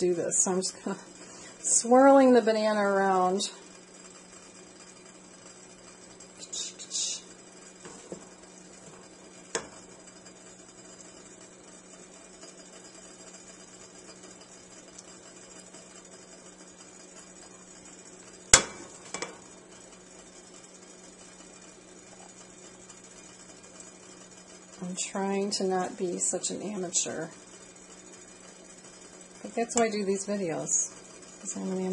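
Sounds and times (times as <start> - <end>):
steady low hum: 0.0 - 31.9.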